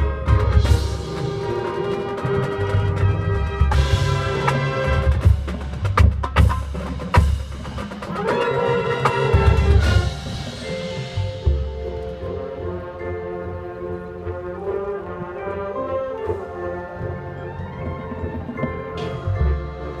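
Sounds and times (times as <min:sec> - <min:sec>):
mallet percussion: 0:00.0 - 0:14.2, 0:16.4 - 0:20.0
marching band playing: 0:00.0 - 0:20.0.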